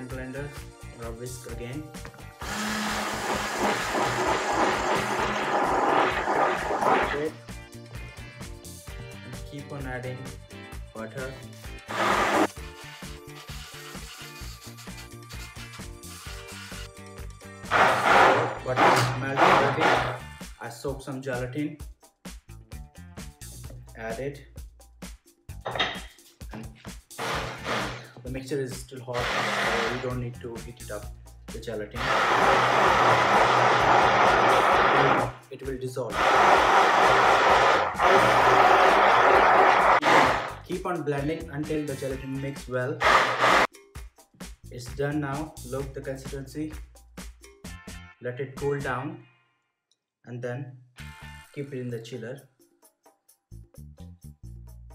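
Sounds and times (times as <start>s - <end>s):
background music: 0.0s - 49.5s, 50.3s - 54.9s
hand blender whirring: 2.4s - 7.2s, 11.9s - 12.6s, 17.7s - 20.2s, 27.2s - 28.1s, 29.1s - 30.1s, 32.0s - 35.4s, 36.1s - 40.6s, 43.0s - 43.7s.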